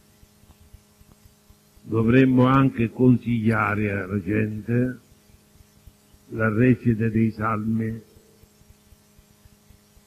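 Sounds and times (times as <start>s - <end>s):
faint steady hum: 0.0s - 10.0s
faint ticks: 0.2s - 1.9s
man speaking: 1.9s - 5.0s, 6.3s - 8.2s.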